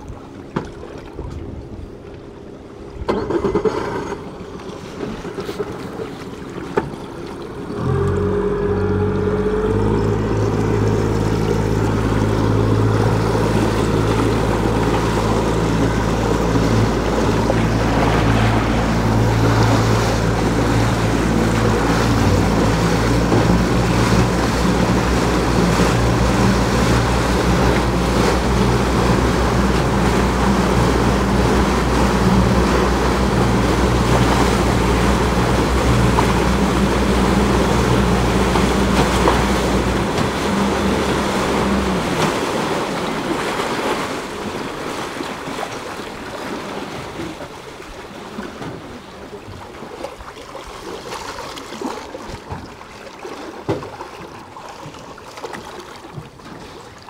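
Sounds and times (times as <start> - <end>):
boat engine droning: 0.0 - 57.0
water splashing: 0.0 - 57.0
wind: 0.0 - 57.0
wake rushing: 3.2 - 57.0.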